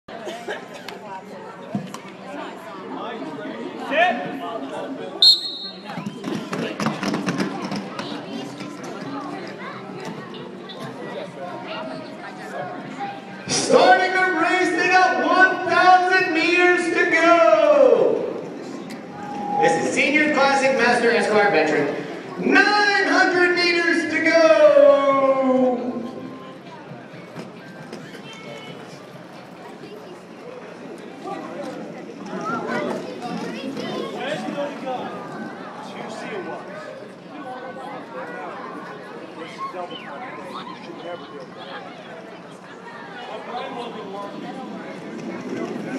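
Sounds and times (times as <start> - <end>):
roller skates clacking on wood floor: 6.2 - 8.9.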